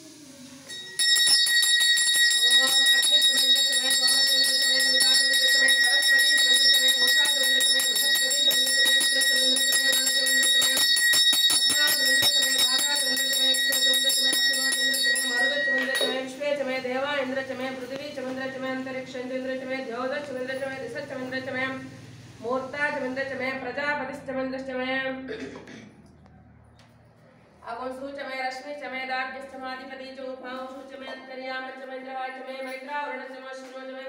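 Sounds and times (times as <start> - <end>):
brass hand bell ringing rapidly: 0.7 - 16.3.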